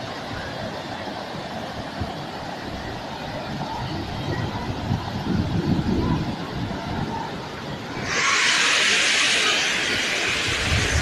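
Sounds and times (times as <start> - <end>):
waterfall roaring: 0.0 - 11.0
wind buffeting microphone: 1.5 - 11.0.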